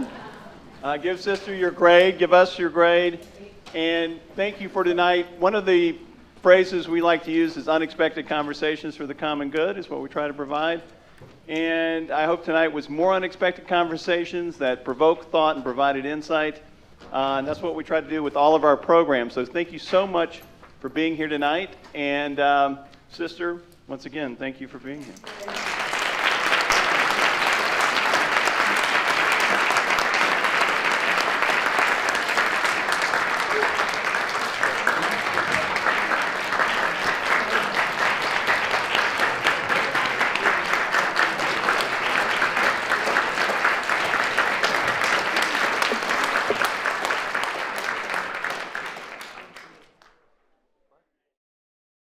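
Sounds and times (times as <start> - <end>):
audience applauding: 0.0 - 0.5, 25.2 - 50.1.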